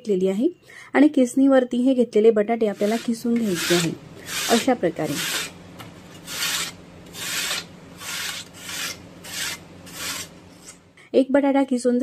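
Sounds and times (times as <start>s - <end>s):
potato grated on metal grater: 2.7s - 10.8s.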